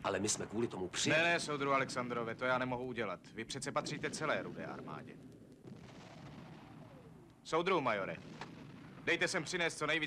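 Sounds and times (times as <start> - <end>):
distant artillery fire rumble: 3.4 - 10.0.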